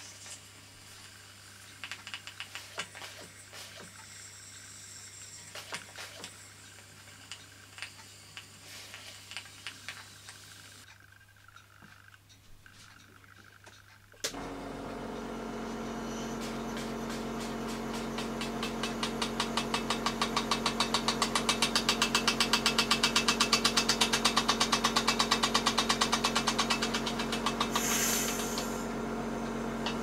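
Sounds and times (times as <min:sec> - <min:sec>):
air compressor humming: 0:14.2 - 0:30.0
small piston engine beating: 0:15.8 - 0:29.0
air hissing: 0:26.6 - 0:29.0.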